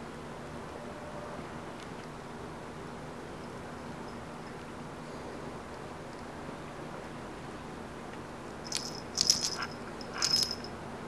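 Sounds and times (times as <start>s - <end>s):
metal collar tag jingling: 8.6s - 10.8s.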